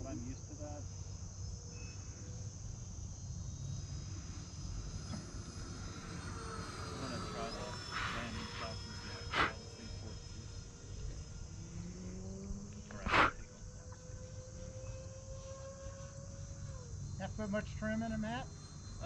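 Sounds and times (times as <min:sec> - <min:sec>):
distant model jet whine: 0:00.0 - 0:19.0
insects chirring: 0:00.0 - 0:19.0.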